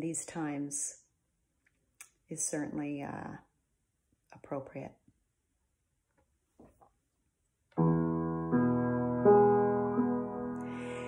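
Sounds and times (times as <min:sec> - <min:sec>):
piano chord ringing: 0:07.8 - 0:11.0.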